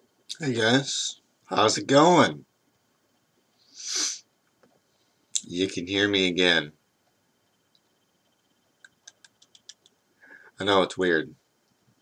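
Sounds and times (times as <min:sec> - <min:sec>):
short breath: 0:10.2 - 0:10.6.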